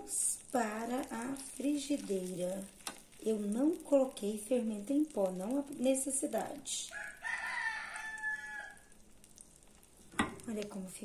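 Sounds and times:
rooster crowing: 0:06.9 - 0:08.9.

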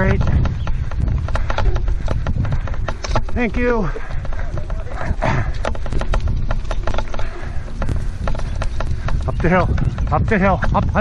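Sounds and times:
running footsteps on grass: 0:00.0 - 0:11.0
wind buffeting microphone: 0:00.0 - 0:11.0.

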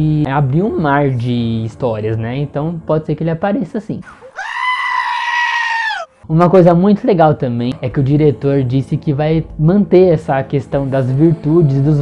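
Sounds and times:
goat bleating: 0:04.4 - 0:06.1.

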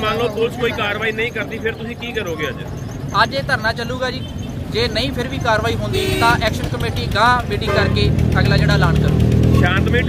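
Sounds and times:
man speaking: 0:00.0 - 0:09.1
traffic rumble: 0:00.0 - 0:10.0.

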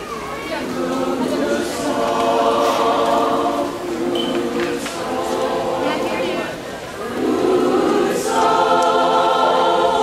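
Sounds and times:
mixed choir singing in harmony: 0:00.5 - 0:10.0.

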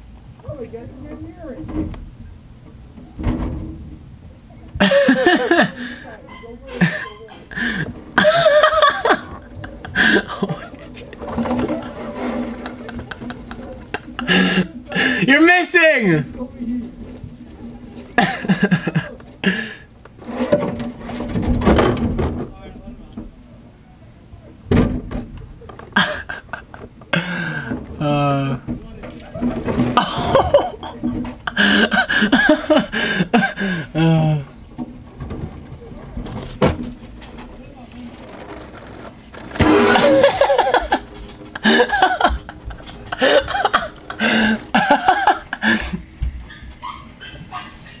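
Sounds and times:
laughter: 0:04.8 - 0:06.1, 0:06.8 - 0:15.3, 0:18.2 - 0:19.8, 0:25.8 - 0:27.7, 0:29.3 - 0:33.9, 0:39.8 - 0:46.0
loud voice: 0:15.0 - 0:16.3
hose water spraying against window: 0:37.9 - 0:45.4.

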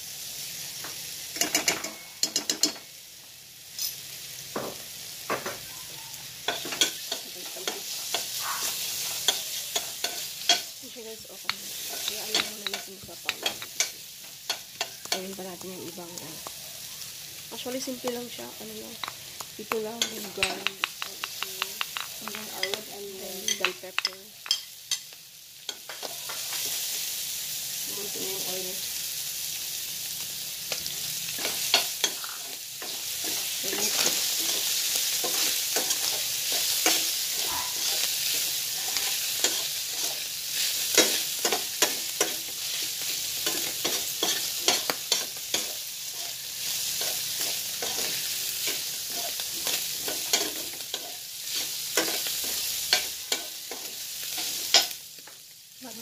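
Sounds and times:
food sizzling in oil: 0:00.0 - 0:56.0
metal spoon scraping a pan: 0:06.5 - 0:10.8, 0:11.5 - 0:15.2, 0:30.8 - 0:55.0.

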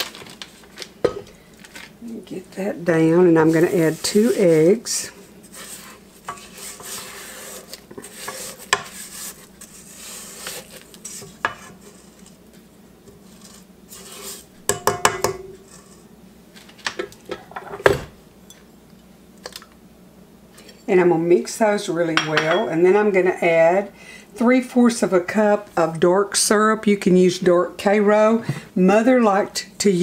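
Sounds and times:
spatula scraping metal bowl: 0:03.4 - 0:12.4, 0:13.1 - 0:14.5, 0:15.4 - 0:16.1.

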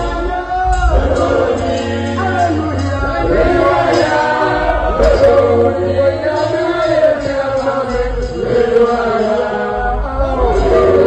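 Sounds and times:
low musical accompaniment: 0:00.0 - 0:11.0
man singing through microphone: 0:00.0 - 0:11.0.

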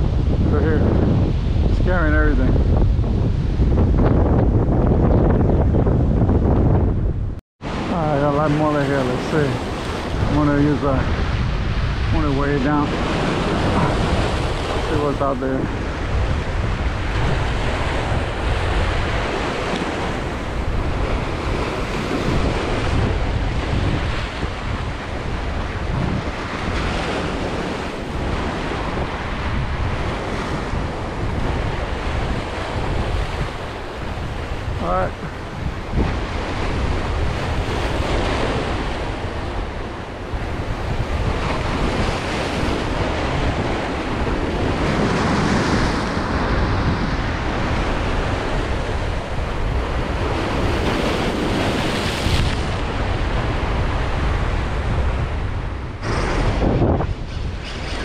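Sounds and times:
wind buffeting microphone: 0:00.0 - 0:58.0
surf breaking over rocks: 0:07.6 - 0:39.8.

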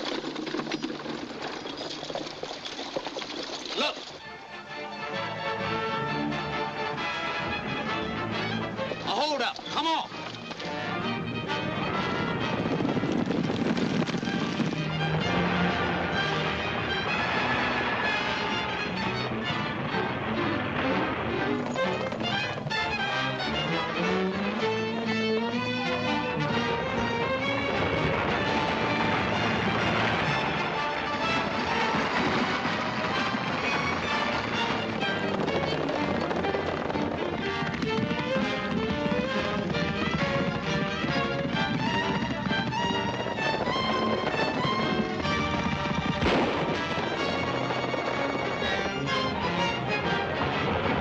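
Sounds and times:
orchestral chase music: 0:02.7 - 0:51.0
gunshot cracks: 0:46.2 - 0:46.9.

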